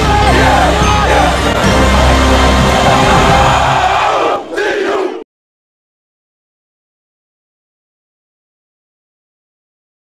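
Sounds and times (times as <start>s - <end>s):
football players chanting: 0.0s - 5.2s
group shouting: 0.0s - 5.2s.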